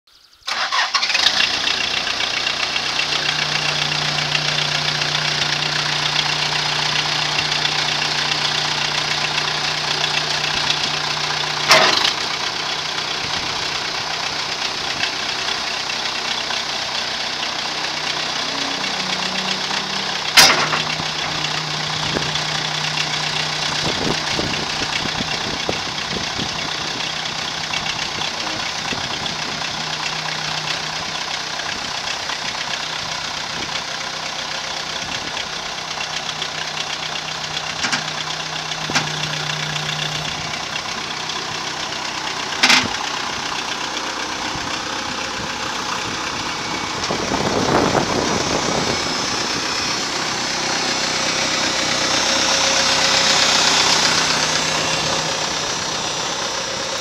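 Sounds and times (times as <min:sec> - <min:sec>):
backhoe engine running: 0:00.3 - 0:57.0.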